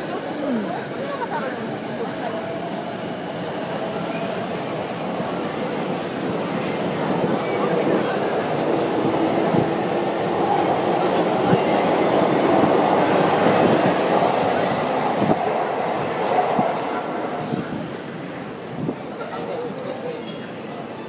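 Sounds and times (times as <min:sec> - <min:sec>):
train rumbling over viaduct: 0:00.0 - 0:21.0.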